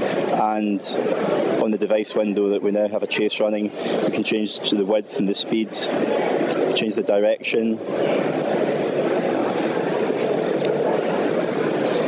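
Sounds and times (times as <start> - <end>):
crowd noise in a hall: 0.0 - 12.0.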